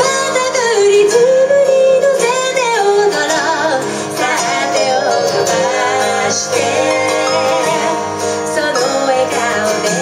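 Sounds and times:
acoustic guitar: 0.0s - 10.0s
bass: 0.0s - 10.0s
keyboard: 0.0s - 10.0s
woman singing: 0.0s - 10.0s.

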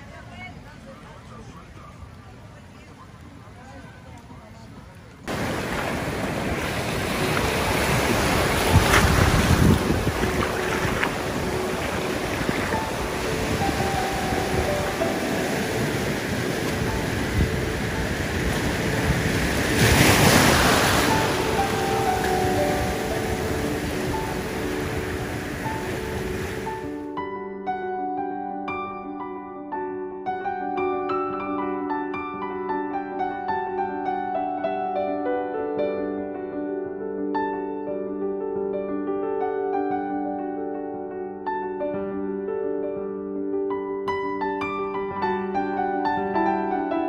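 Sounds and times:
wind buffeting microphone: 4.6s - 26.9s
surf washing against rocks: 5.3s - 27.0s
soft background music: 7.6s - 47.0s.

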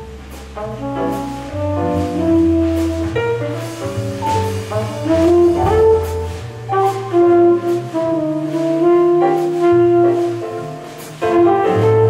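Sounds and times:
flugelhorn jazz melody: 0.0s - 12.0s
low bass line: 0.0s - 12.0s.

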